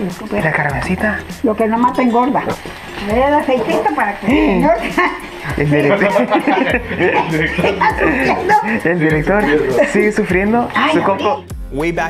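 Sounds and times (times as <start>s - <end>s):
background music: 0.0s - 12.0s
woman speaking animatedly: 1.1s - 6.0s, 7.6s - 8.8s, 10.6s - 11.5s.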